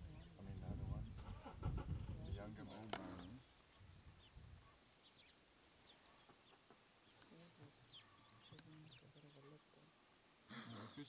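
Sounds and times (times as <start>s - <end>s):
faint high bird chirps: 2.2s - 10.0s.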